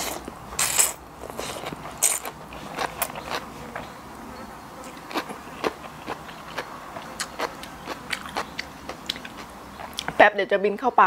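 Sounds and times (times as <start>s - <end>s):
slurping and chewing food: 0.0s - 3.9s, 4.8s - 10.1s.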